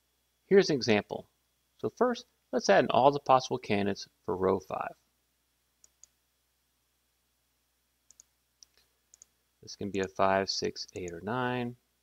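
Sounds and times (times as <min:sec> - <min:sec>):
faint computer clicks: 0:05.8 - 0:06.2, 0:08.1 - 0:09.4, 0:10.8 - 0:11.2.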